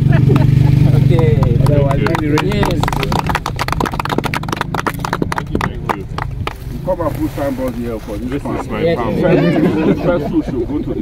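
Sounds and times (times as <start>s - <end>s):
group clapping: 0.0s - 7.1s.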